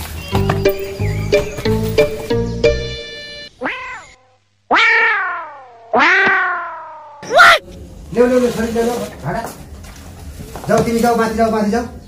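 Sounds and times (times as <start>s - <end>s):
animal-like cries falling in pitch: 3.5s - 7.6s.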